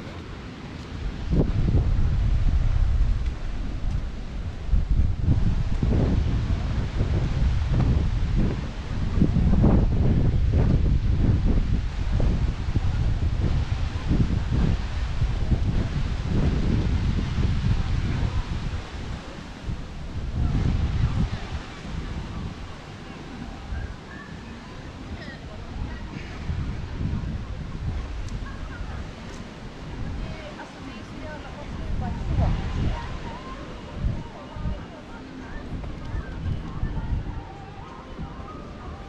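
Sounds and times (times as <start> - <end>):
wind buffeting microphone: 0.0 - 39.0
wind in leaves hissing: 0.0 - 39.0.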